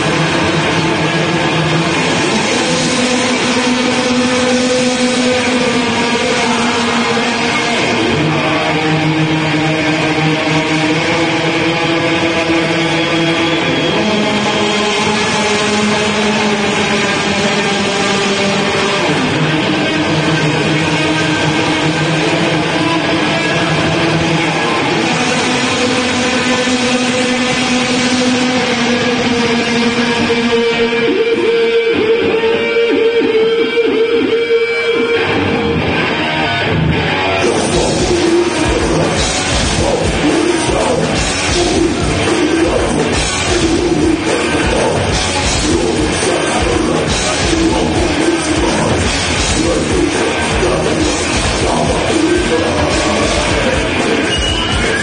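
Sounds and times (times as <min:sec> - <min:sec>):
death metal band playing live: 0:00.0 - 0:55.0
distorted guitars: 0:00.0 - 0:55.0
drumming: 0:37.4 - 0:55.0.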